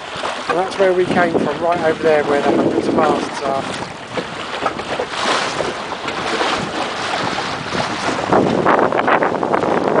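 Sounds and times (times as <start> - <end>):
water washing along boat hull: 0.0 - 10.0
wind buffeting microphone: 0.0 - 10.0.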